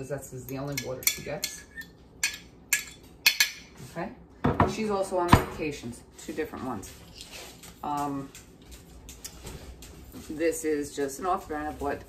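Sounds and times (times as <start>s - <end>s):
metal utensil clinking on dishes: 0.5s - 3.7s.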